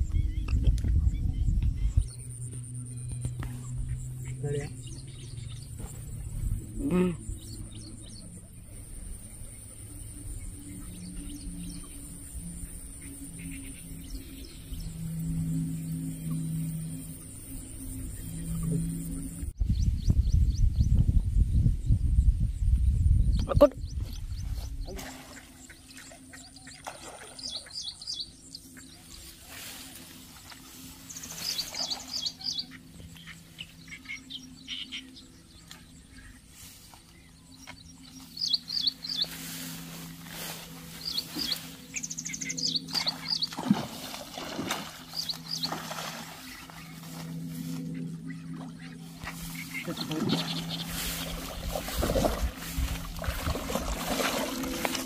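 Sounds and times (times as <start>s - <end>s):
low rumble on microphone: 0.0s - 27.2s, 35.3s - 55.0s
small birds chirping: 0.0s - 54.5s
steady low hum: 0.0s - 55.0s.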